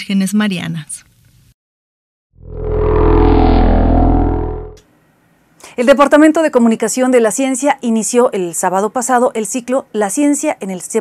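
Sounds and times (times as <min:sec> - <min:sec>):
droning bass chord sting: 0:02.4 - 0:04.8.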